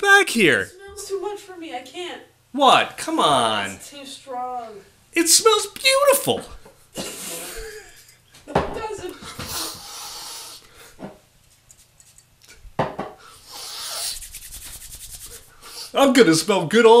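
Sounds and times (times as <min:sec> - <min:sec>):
hands rubbing together: 0:11.4 - 0:12.3, 0:13.4 - 0:15.9.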